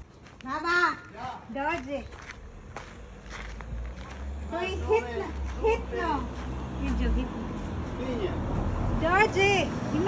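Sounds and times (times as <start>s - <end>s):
footsteps on gravel: 0.0s - 7.8s.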